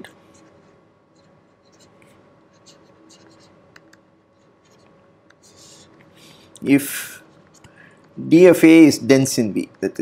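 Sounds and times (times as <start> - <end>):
faint steady hum: 0.0 - 10.0
stylus scratching on tablet: 0.3 - 3.6, 4.3 - 6.1.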